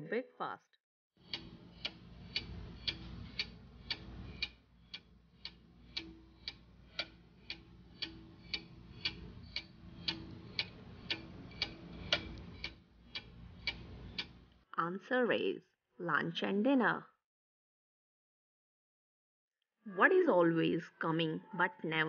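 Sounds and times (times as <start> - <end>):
clock ticking: 1.2 - 14.5
faint low hum: 1.3 - 14.6.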